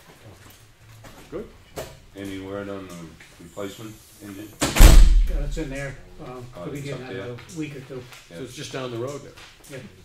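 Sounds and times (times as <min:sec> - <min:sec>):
steady low hum: 0:04.7 - 0:06.5.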